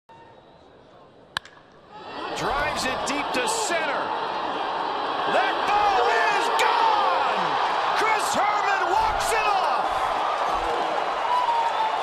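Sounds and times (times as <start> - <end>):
baseball bat cracking ball: 1.3 - 1.8.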